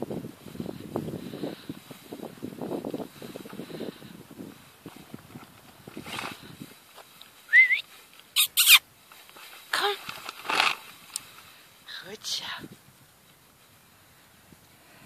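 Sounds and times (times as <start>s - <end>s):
rustling in grass: 0.0s - 15.0s.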